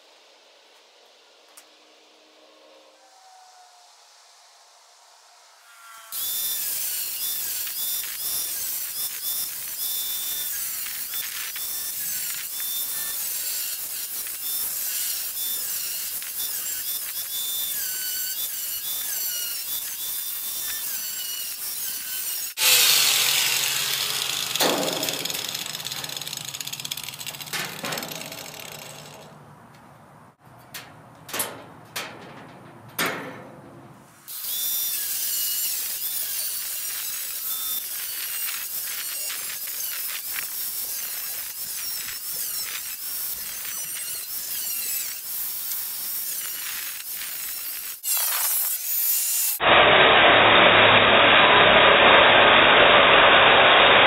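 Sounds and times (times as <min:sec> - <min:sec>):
angle grinder cutting sheet steel: 0:05.6 - 0:29.4, 0:34.3 - 0:54.0.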